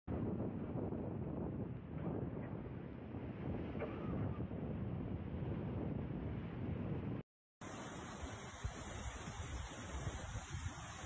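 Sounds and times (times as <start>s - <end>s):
wind buffeting microphone: 0.1s - 7.2s, 8.1s - 11.0s
floodwater rushing: 7.6s - 11.0s.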